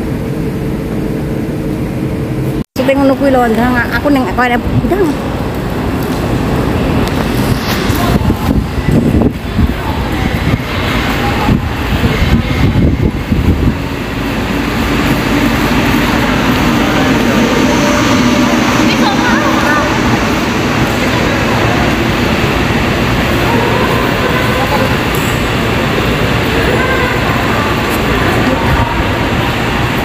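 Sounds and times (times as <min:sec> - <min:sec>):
indistinct voices: 0:02.8 - 0:30.0.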